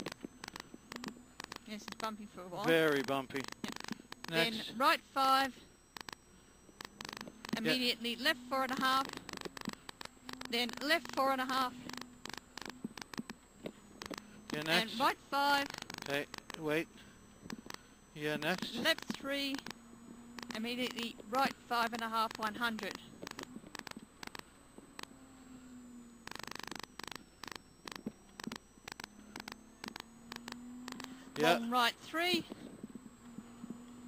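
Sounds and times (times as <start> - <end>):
short clicks and crackles: 0.0 - 4.6, 5.7 - 7.8, 8.6 - 14.8, 15.5 - 25.2, 26.2 - 31.5
faint electrical hum and static: 0.0 - 34.0.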